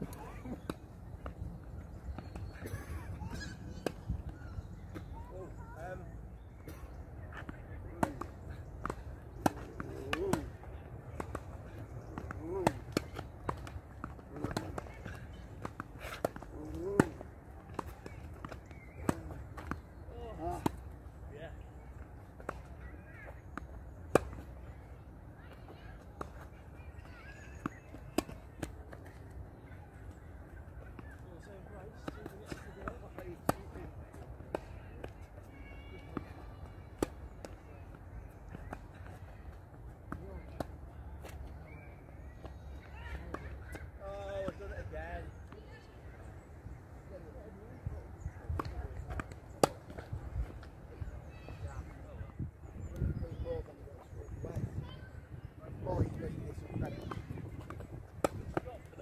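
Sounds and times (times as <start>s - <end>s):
tennis balls struck and bouncing: 6.6s - 41.6s, 47.7s - 50.9s, 56.0s - 59.0s.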